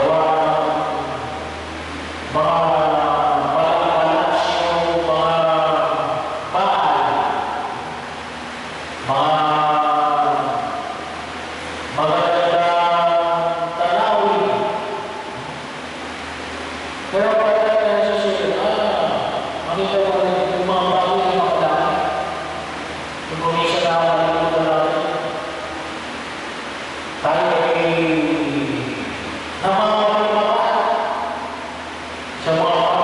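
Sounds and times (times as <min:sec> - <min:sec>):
man chanting into a microphone: 0:00.0 - 0:01.4, 0:02.3 - 0:07.9, 0:09.0 - 0:10.8, 0:11.9 - 0:14.9, 0:17.1 - 0:22.3, 0:23.3 - 0:25.5, 0:27.2 - 0:31.4, 0:32.4 - 0:33.0
low amplifier hum: 0:00.0 - 0:33.0.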